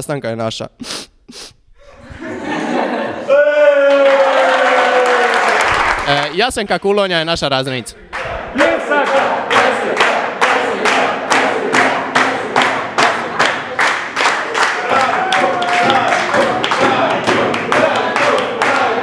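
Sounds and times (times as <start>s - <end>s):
voices cheering: 3.2s - 6.3s, 8.1s - 10.0s, 14.3s - 19.0s
rhythmic group clapping: 3.9s - 6.4s, 8.0s - 19.0s.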